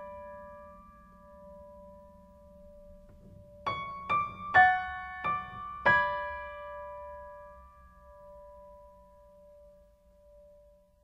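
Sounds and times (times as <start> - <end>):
piano chord ringing: 0.0 - 9.8.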